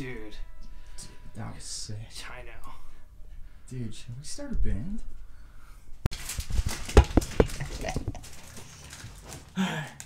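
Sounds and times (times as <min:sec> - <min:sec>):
microphone handling knocks and rustles: 0:06.4 - 0:08.4.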